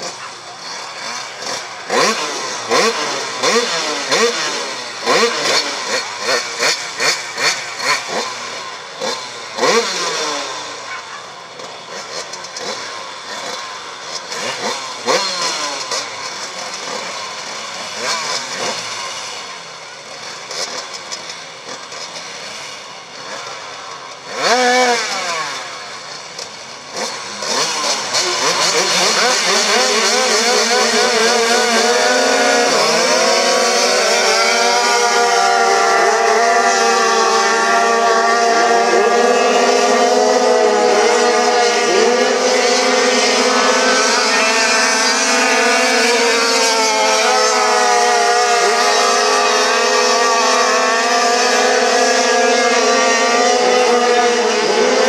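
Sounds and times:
motorcycle engines revving: 0.0s - 55.0s.

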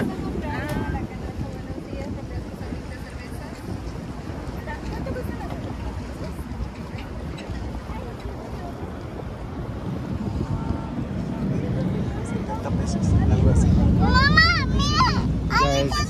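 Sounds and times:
ferry engine rumble: 0.0s - 16.0s
passengers chattering: 0.0s - 16.0s
wind buffeting microphone: 0.0s - 16.0s.

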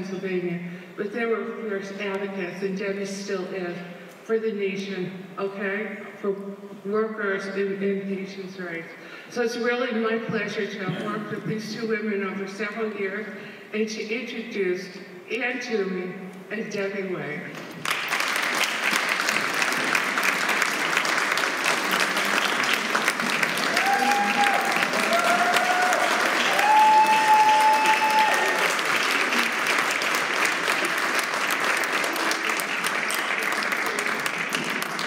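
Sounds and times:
audience applauding: 17.8s - 35.0s
people cheering: 19.5s - 35.0s.

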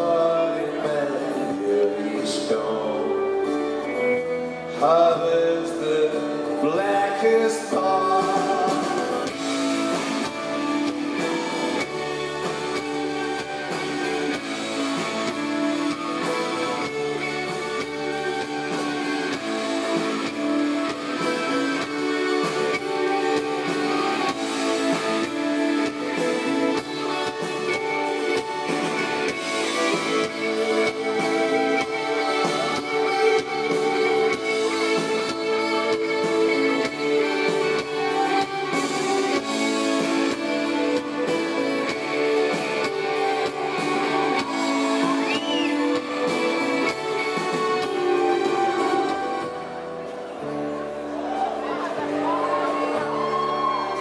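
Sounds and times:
electric guitar: 0.0s - 54.0s
live rock band playing: 0.0s - 54.0s.

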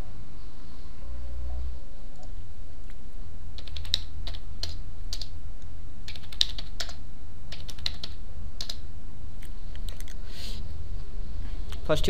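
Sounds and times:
steady low hum: 0.0s - 12.0s
computer keyboard typing: 3.6s - 5.4s, 6.1s - 8.8s, 9.7s - 10.2s.

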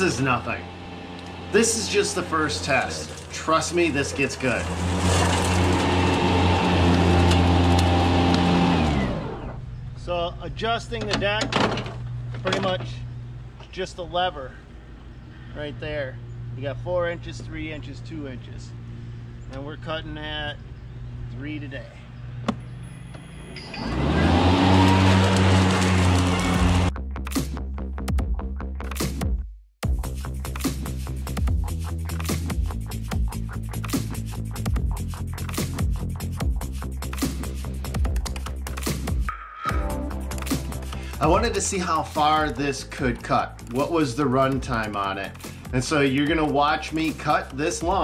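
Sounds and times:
electric mower blades humming: 0.0s - 9.6s, 23.0s - 26.9s
electronic music with beat: 27.1s - 42.6s.

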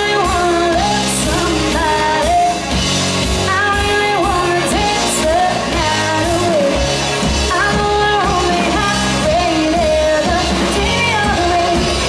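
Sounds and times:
rock band playing: 0.0s - 12.0s
woman singing lead: 0.0s - 12.0s.

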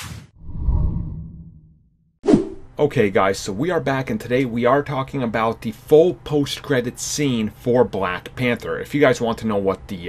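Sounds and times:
sharp swoosh: 2.2s - 2.7s.

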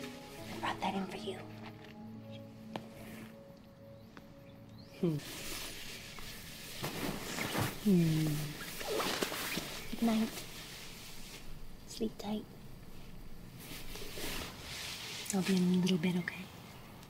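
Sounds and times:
soft music tones: 0.0s - 14.7s
crackling hiss: 0.0s - 17.0s.

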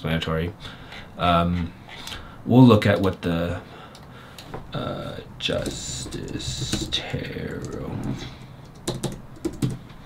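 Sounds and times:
computer keyboard keystrokes: 5.6s - 7.8s, 8.4s - 9.8s.

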